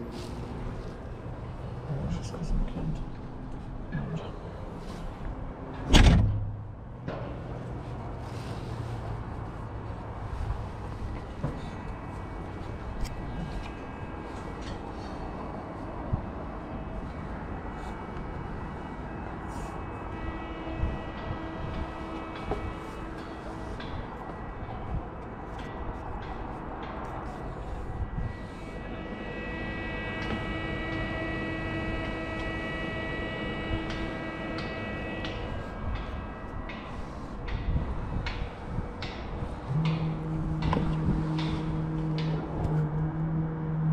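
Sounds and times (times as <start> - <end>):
wind buffeting microphone: 9.2 - 29.0, 32.9 - 43.9
multi-pitched machine whine: 10.2 - 43.9.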